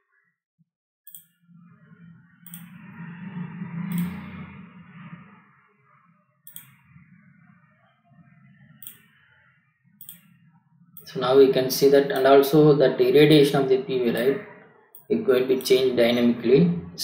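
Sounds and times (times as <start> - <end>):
computer mouse clicks: 2.4 - 2.7, 3.9 - 4.2, 6.5 - 6.8, 8.8 - 9.2, 10.0 - 10.4.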